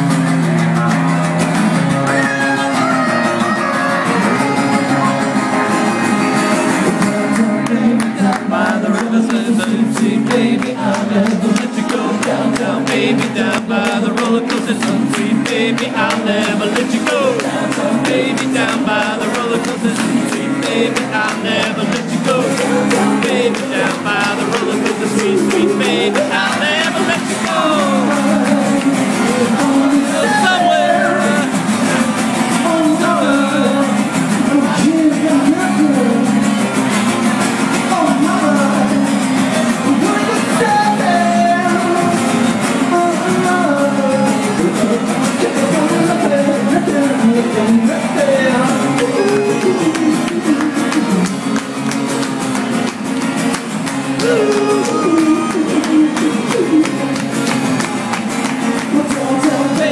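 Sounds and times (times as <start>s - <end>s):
electric guitar: 0.0s - 59.9s
live pop band playing: 0.0s - 59.9s
person singing: 1.9s - 36.4s, 37.8s - 51.6s, 54.0s - 57.6s, 58.7s - 59.9s.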